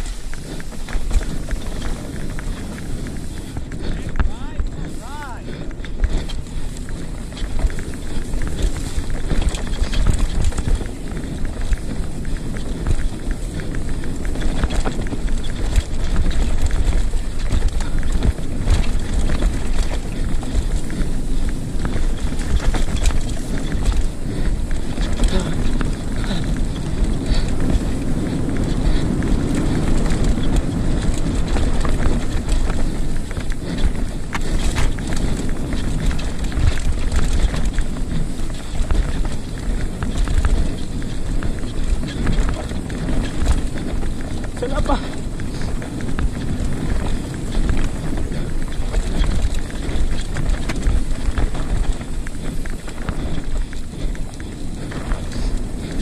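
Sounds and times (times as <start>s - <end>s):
bike clicks and rattles: 0.0s - 56.0s
wind and tyre roar: 0.0s - 56.0s.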